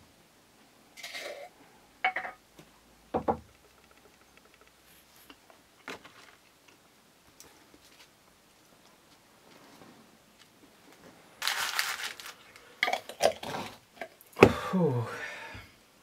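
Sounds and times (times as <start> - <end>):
rustling crunch: 7.5 - 12.7.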